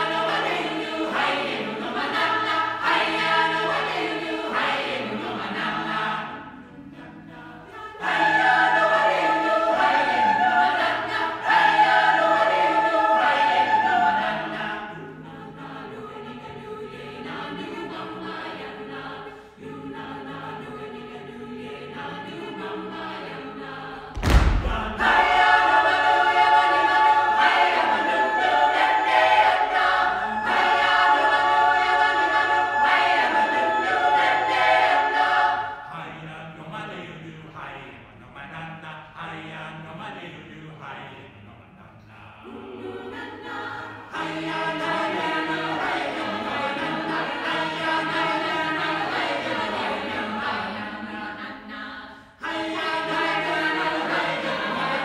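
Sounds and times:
choir singing a cappella: 0:00.0 - 0:55.0
sharp thump: 0:24.2 - 0:25.4.

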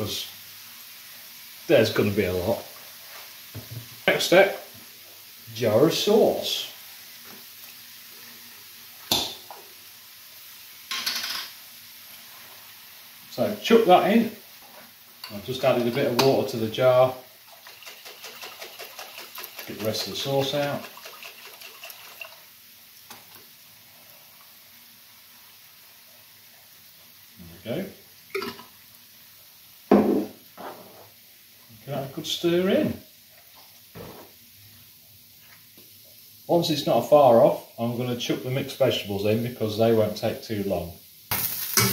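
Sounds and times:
person speaking: 0:15.2 - 0:17.2, 0:19.5 - 0:21.0.

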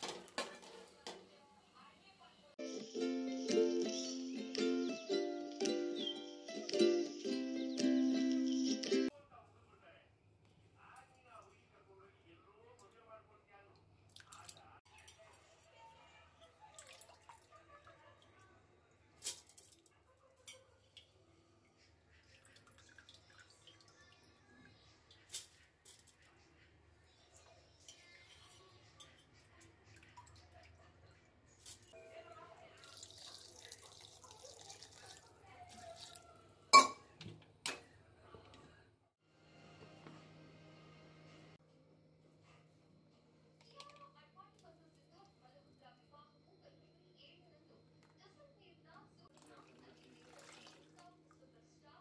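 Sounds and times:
water dripping: 0:22.2 - 0:24.2, 0:32.7 - 0:36.3, 0:49.3 - 0:51.1.

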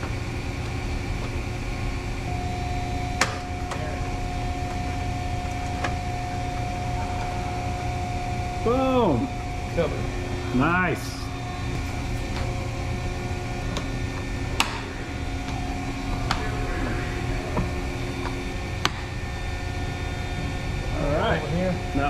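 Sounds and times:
low machinery drone: 0:00.0 - 0:22.0
thin humming tones: 0:00.0 - 0:22.0.

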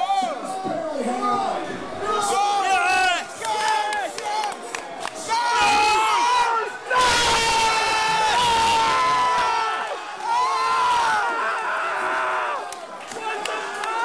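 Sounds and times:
crowd noise: 0:00.0 - 0:14.0.

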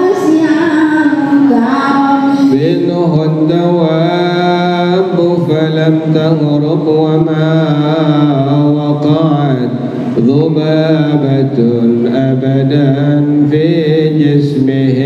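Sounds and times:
man chanting through a microphone: 0:01.7 - 0:15.0.

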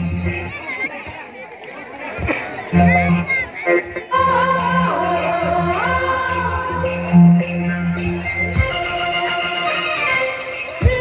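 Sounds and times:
music with heavy bass: 0:00.0 - 0:00.6, 0:02.6 - 0:11.0
people chattering: 0:00.0 - 0:11.0.

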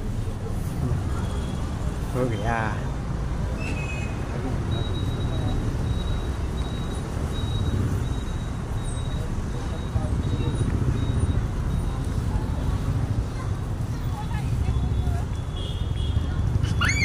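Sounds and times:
faint voices: 0:08.6 - 0:17.0.

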